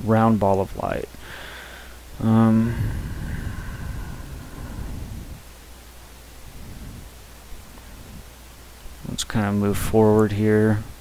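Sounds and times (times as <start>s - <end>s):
low hum: 0.0s - 11.0s
microphone hiss: 0.0s - 11.0s
faint low rustling: 2.1s - 11.0s.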